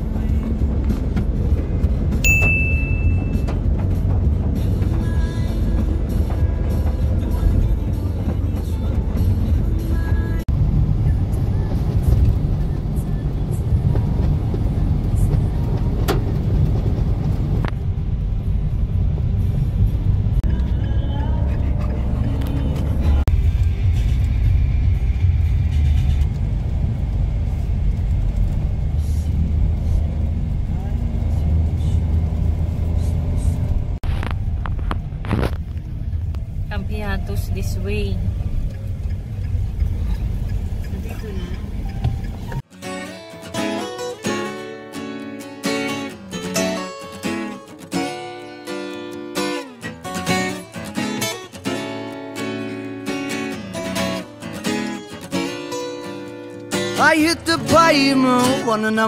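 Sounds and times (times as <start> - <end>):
car road and engine rumble: 0.0 - 59.0.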